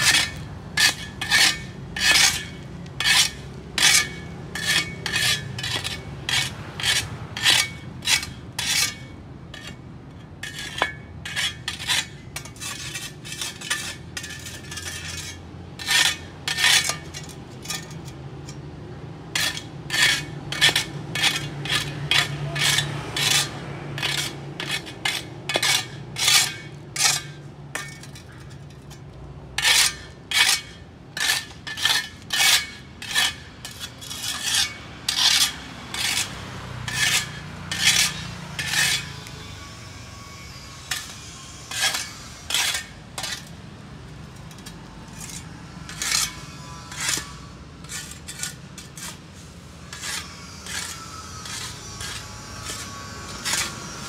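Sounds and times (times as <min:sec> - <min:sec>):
metal shovel scraping pavement: 0:00.0 - 0:54.0.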